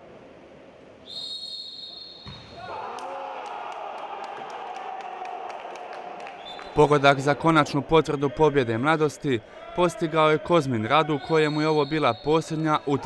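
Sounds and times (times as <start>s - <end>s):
referee's whistle: 1.0s - 2.6s, 11.2s - 12.8s
spectators cheering and shouting: 2.6s - 13.0s.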